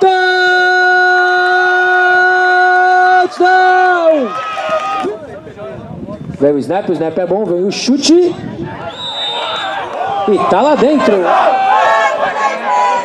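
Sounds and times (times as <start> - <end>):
commentator's long drawn-out shout: 0.0 - 5.2
quieter voices: 0.4 - 13.0.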